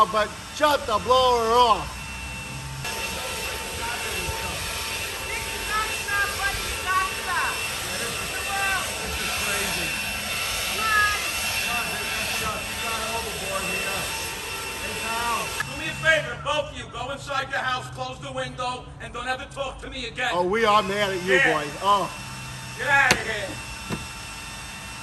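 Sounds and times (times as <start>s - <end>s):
leaf blower whining: 0.0s - 16.6s, 20.4s - 25.0s.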